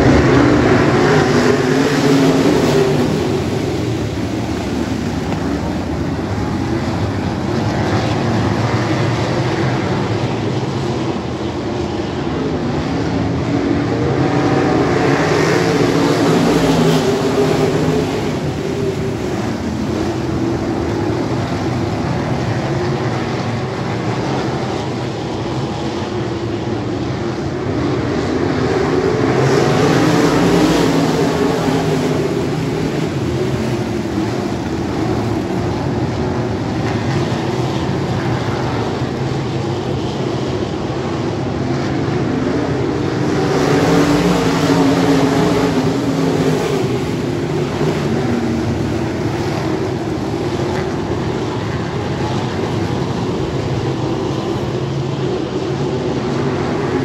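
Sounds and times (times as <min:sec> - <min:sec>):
race car engines running hard: 0:00.0 - 0:57.0.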